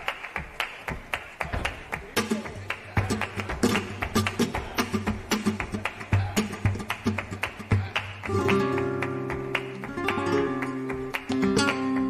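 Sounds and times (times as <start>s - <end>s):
sharp handclaps: 0.0s - 12.0s.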